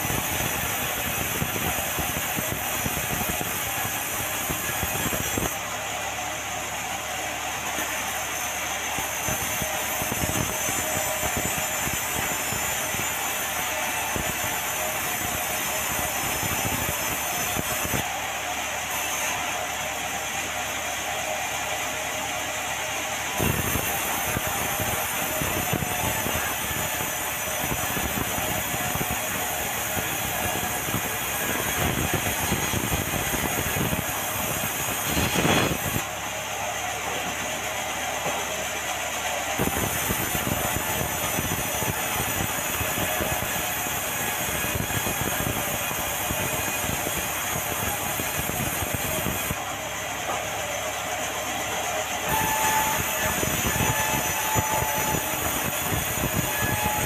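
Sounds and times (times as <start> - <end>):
saw cutting timber: 0.0 - 57.0
steady whine: 0.0 - 57.0.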